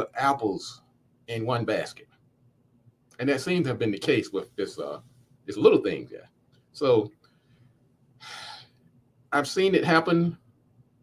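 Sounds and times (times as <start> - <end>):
man breathing in through mouth: 7.3 - 8.8.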